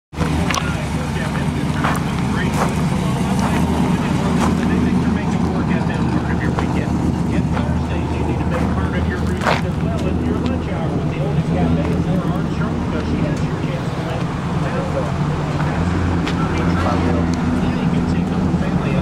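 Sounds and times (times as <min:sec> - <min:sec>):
car engine idling: 0:00.1 - 0:19.0.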